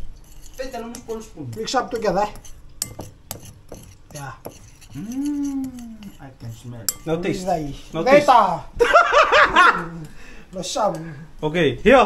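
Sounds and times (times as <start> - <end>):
person's drawn-out vocal sound: 5.0 - 6.1.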